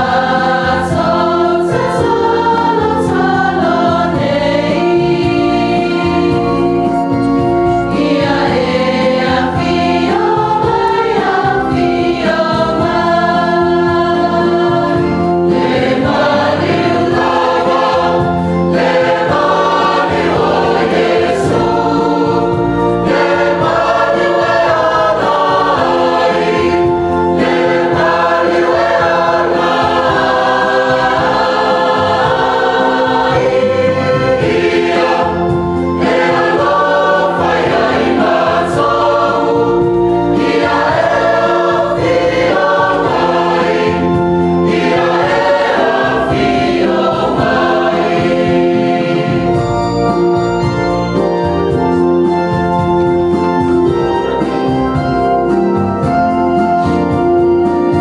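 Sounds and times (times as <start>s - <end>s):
church choir singing a hymn: 0.0s - 58.0s.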